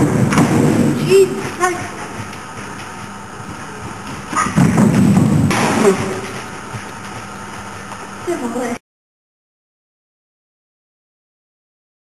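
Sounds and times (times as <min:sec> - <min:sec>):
horse hoofbeats on soft ground: 0:00.0 - 0:08.8.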